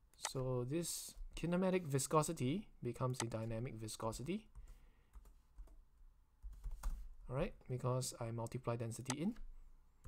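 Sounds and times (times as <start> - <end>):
computer keyboard typing: 6.4 - 7.0.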